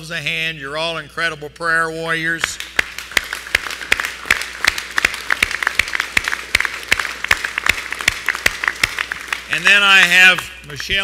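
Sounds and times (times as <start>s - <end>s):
sharp single claps: 2.4s - 9.7s
audience applauding: 2.6s - 11.0s.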